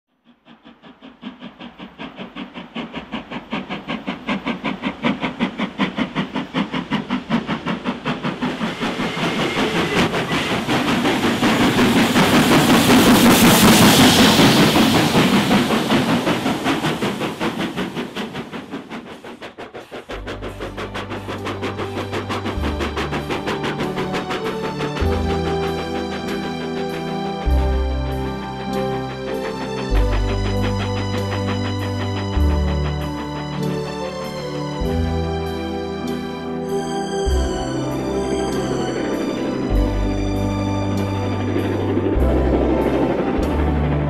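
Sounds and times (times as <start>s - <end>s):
steam locomotive exhaust beating: 0.1s - 44.0s
hiss of steam: 0.2s - 43.7s.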